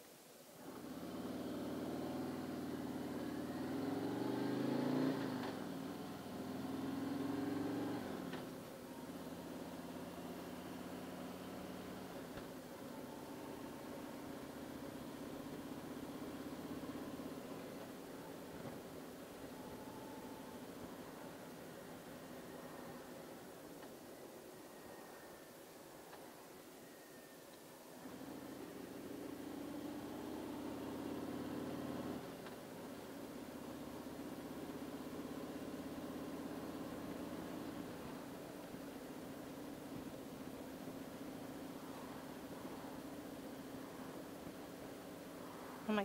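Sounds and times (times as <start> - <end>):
motorcycle engine accelerating: 0.6 - 12.5, 13.2 - 18.0, 28.0 - 32.6, 33.2 - 44.8.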